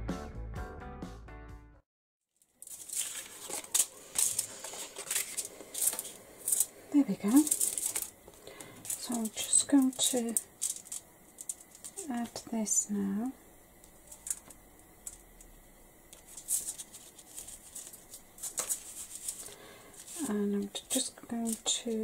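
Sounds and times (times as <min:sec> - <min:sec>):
aluminium foil crinkling: 0:02.3 - 0:12.5, 0:13.8 - 0:22.0.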